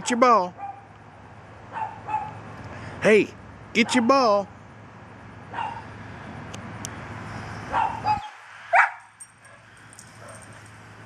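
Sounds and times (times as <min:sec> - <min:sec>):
dog barking: 0:00.6 - 0:00.8, 0:01.7 - 0:02.4, 0:03.8 - 0:04.1, 0:05.5 - 0:05.9, 0:07.7 - 0:10.6.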